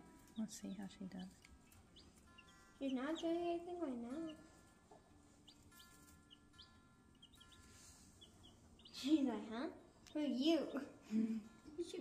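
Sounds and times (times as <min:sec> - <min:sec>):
chicks peeping: 0:00.1 - 0:09.2.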